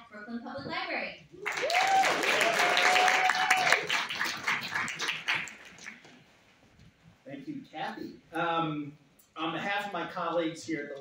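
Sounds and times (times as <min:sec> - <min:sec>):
audience applauding: 0:01.4 - 0:06.2.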